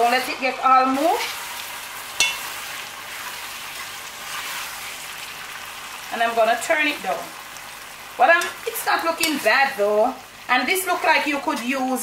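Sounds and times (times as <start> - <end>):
food sizzling in metal pot: 0.0 - 12.0.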